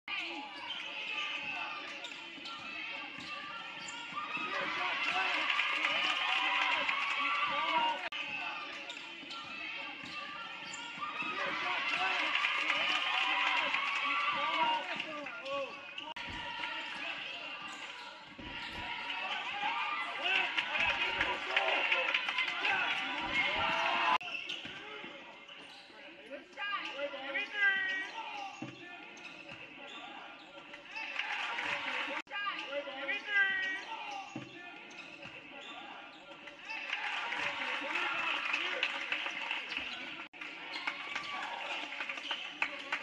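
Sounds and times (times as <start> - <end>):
voices of players and spectators: 0.0 - 43.0.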